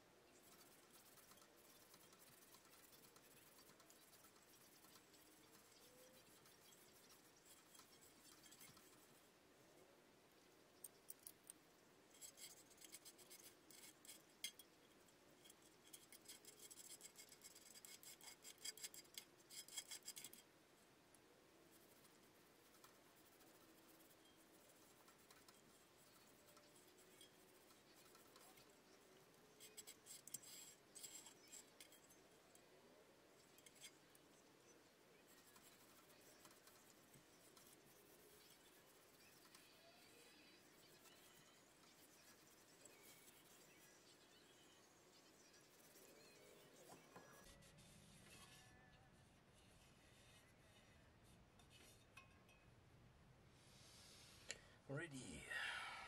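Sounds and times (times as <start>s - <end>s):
scraping and clicking on metal frame: 12.1s - 20.5s, 29.5s - 32.6s, 33.3s - 34.4s.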